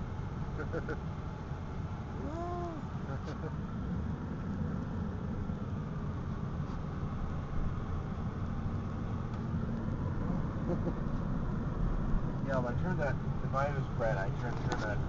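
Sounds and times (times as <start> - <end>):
road and engine noise in car: 0.0 - 15.0.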